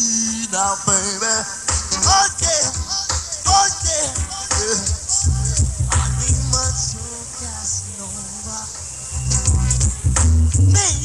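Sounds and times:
person singing: 0.0s - 9.0s, 10.5s - 11.0s
dancehall music over sound system: 0.0s - 11.0s
heavy bass line: 1.8s - 7.2s, 9.2s - 11.0s.

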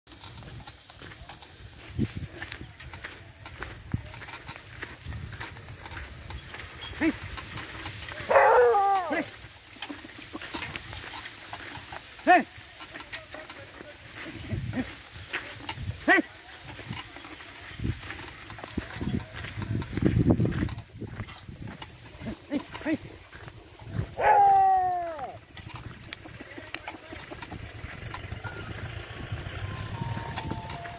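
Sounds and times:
hooves and implement scraping: 0.1s - 30.9s
plough rumbling and rattling: 0.1s - 30.9s
person calling to bullocks: 6.9s - 7.2s, 8.1s - 9.4s, 12.0s - 15.0s, 15.9s - 16.6s, 24.0s - 25.4s.

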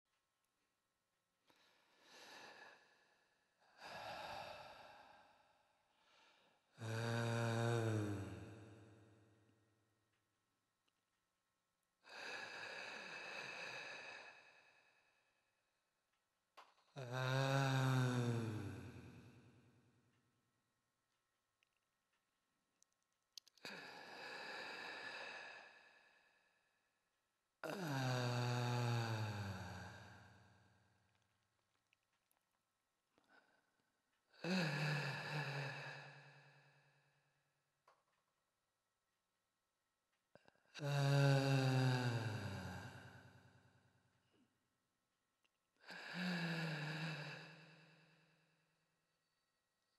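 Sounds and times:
low voice chanting om: 6.7s - 9.0s.

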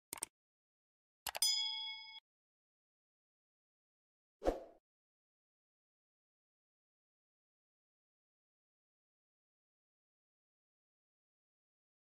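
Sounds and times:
bell ding with ringing tones: 1.4s - 2.2s.

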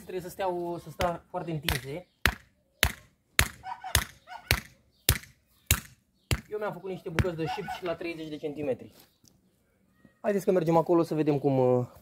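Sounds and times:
hammer striking wooden stake: 1.0s - 6.5s.

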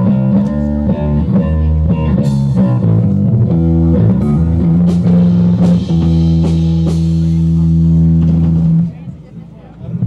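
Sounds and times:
electric guitar and bass chord: 0.0s - 9.0s
crowd chatter: 0.0s - 10.0s.

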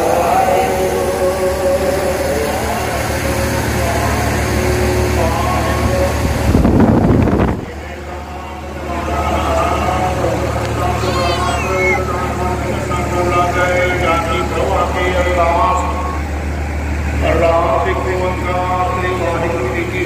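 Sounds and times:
man reciting prayer over loudspeaker: 0.0s - 6.7s, 7.5s - 16.5s, 17.1s - 20.0s.

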